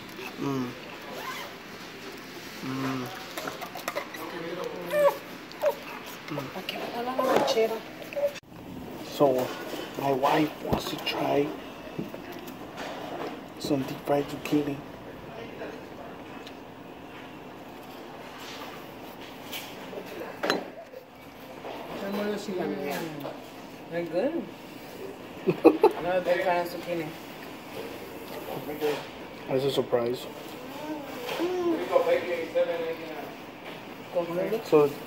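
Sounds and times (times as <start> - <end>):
dining room chatter: 0.0 - 8.4, 9.0 - 35.0.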